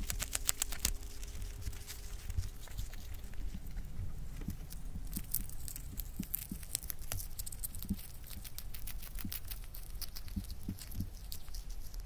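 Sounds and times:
hamster chewing grass: 0.0s - 12.0s.

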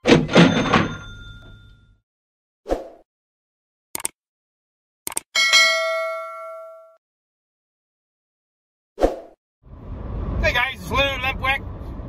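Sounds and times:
ringing bell tone: 0.5s - 2.0s, 5.4s - 7.0s.

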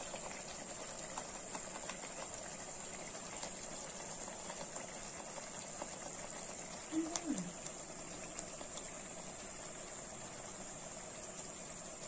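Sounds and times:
gravy bubbling in a pan: 0.0s - 12.0s
steady hiss: 0.0s - 12.0s.

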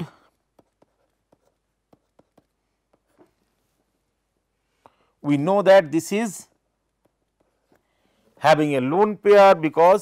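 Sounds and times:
stylus tapping on tablet: 0.4s - 3.3s.

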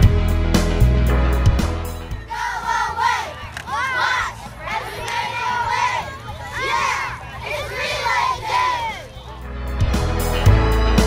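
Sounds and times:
children shouting and cheering: 2.1s - 9.5s.

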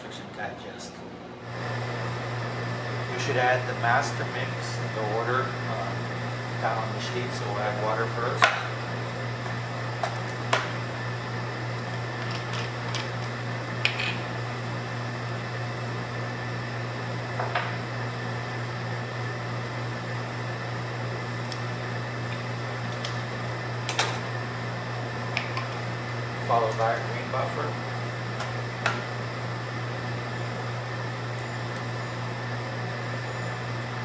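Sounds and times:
low mechanical equipment hum: 0.0s - 34.0s.

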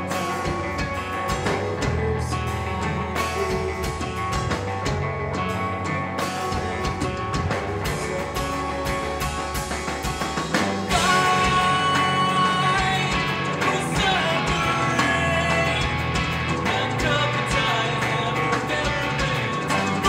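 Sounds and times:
metal band playing: 0.0s - 20.0s.

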